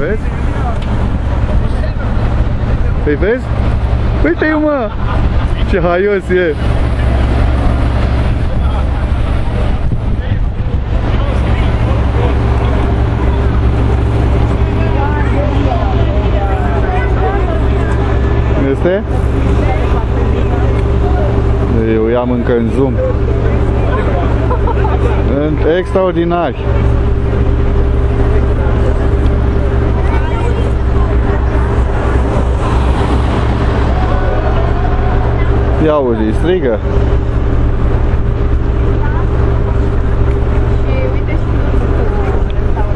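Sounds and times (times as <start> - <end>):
faint voices of people: 0.0 - 42.9
people talking: 0.0 - 42.9
traffic rumble: 0.0 - 42.9.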